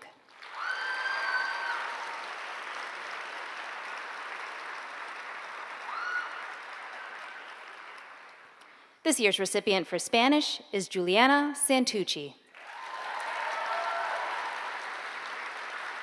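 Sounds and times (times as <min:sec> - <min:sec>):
audience applauding: 0:00.2 - 0:08.8, 0:12.5 - 0:16.0
high cheer: 0:00.3 - 0:08.3, 0:12.5 - 0:16.0.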